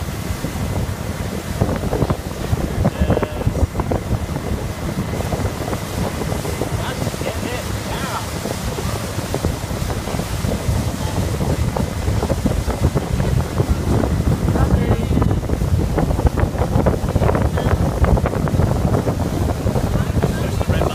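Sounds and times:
motorboat engine: 0.0 - 20.9
rush of boat wake: 0.0 - 20.9
wind buffeting microphone: 0.0 - 20.9.

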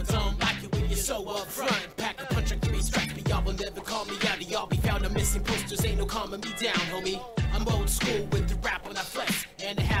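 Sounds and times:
deep bass: 0.0 - 1.2, 2.3 - 3.6, 4.8 - 6.2, 7.4 - 8.7
rapping over a beat: 0.0 - 10.0.

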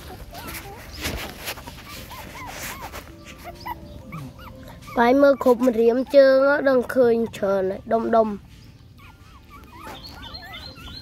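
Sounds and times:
puppies whimpering: 0.0 - 11.0.

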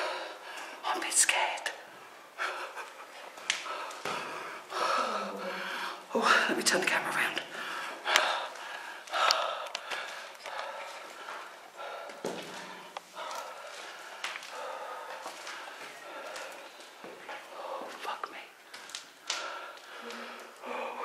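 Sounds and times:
breathing: 0.0 - 0.8, 3.6 - 6.1, 7.5 - 17.9, 18.7 - 21.0.

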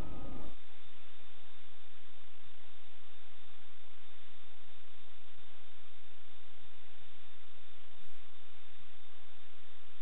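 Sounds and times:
faint low hum: 0.0 - 10.0
steady hiss: 0.0 - 10.0.

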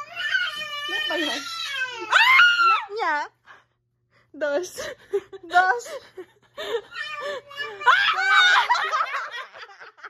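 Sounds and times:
people laughing: 7.9 - 10.0.

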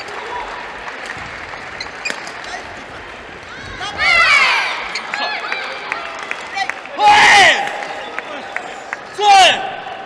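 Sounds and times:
spectators clapping: 0.0 - 3.0, 4.9 - 10.0.

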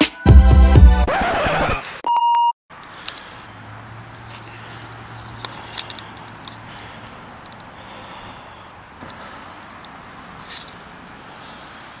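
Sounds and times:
background music: 0.0 - 1.4.

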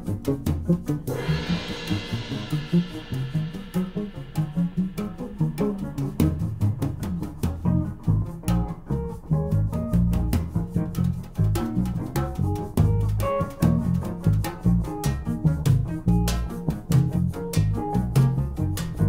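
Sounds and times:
electric bass line: 0.0 - 19.0
jazz band playing: 0.0 - 19.0
sharp percussion hits: 1.1 - 7.9.

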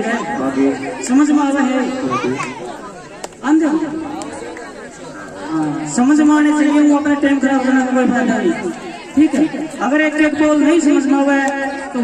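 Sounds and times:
man talking over loudspeakers: 0.0 - 2.6, 5.4 - 12.0
voices chattering: 0.0 - 12.0.

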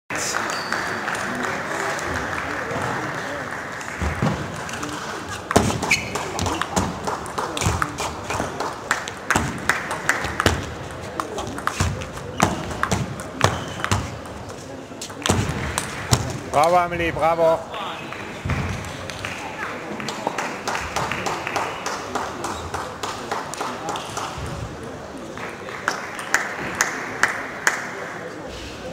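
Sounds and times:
murmur of voices: 0.1 - 28.9.

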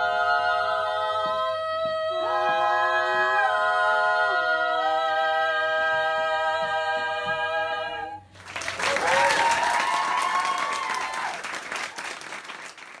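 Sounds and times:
women singing a cappella harmony: 0.0 - 8.4
audience applause and cheer: 8.4 - 13.0.

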